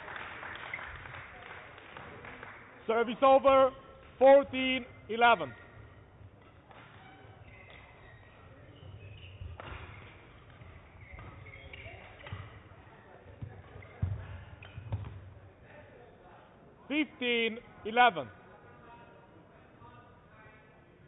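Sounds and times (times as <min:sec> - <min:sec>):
racket striking shuttlecock: 0:09.2 - 0:12.6.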